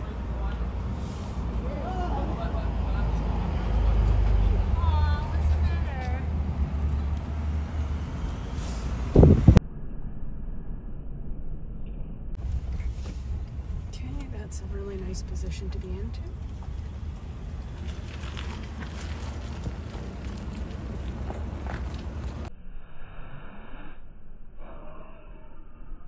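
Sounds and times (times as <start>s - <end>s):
road noise: 0.0s - 9.7s, 12.3s - 22.5s
vehicle engine rumble: 0.0s - 22.6s.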